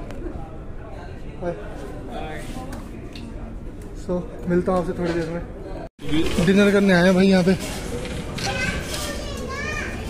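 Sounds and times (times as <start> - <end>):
chatter of people: 0.0 - 10.0.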